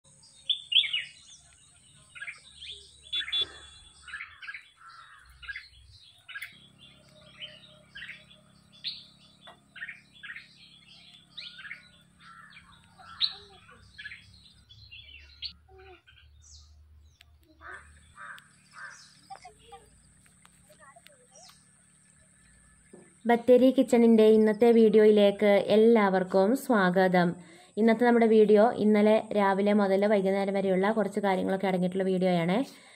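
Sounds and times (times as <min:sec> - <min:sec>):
birds chirping: 0:00.1 - 0:32.9.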